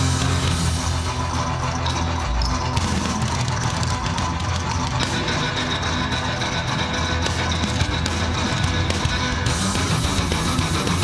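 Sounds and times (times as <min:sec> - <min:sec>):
distorted cellos playing metal: 0:00.0 - 0:11.0
drum kit: 0:00.0 - 0:11.0.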